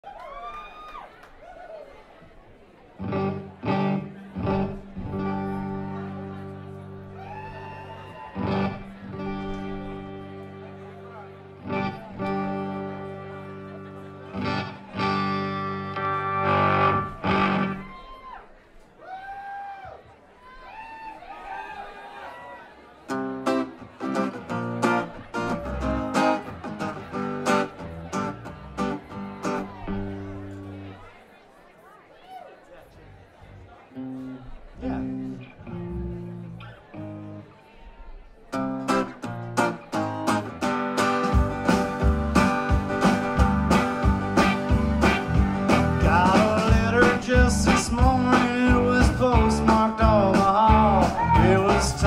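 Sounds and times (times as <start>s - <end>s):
crowd noise: 0.0s - 52.0s
loud strummed guitar chords: 3.0s - 7.2s, 8.4s - 17.9s, 23.1s - 30.9s, 38.6s - 52.0s.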